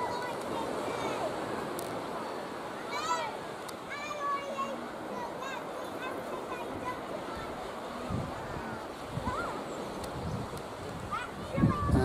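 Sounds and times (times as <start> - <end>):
sea surf washing on shore: 0.0 - 12.0
wind buffeting microphone: 6.5 - 12.0.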